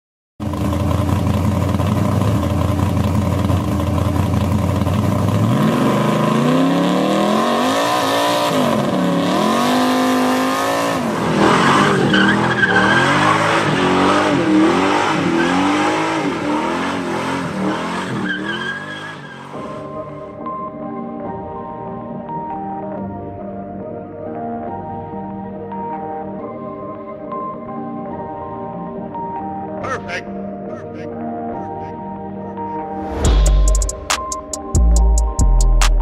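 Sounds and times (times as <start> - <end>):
car engine revving: 0.4 - 20.4.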